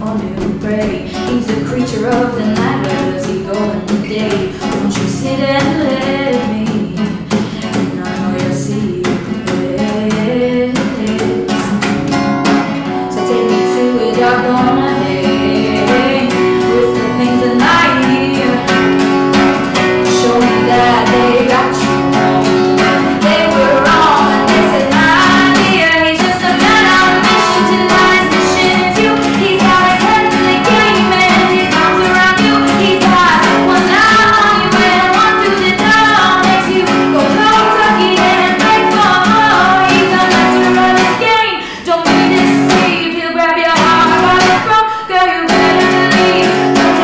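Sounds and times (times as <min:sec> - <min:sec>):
woman singing: 0:00.0 - 0:12.2, 0:12.8 - 0:47.0
strummed acoustic guitar: 0:00.0 - 0:47.0.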